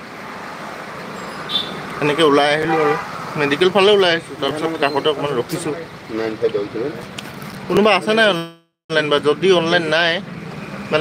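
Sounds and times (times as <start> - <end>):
background traffic noise: 0.0 - 11.0.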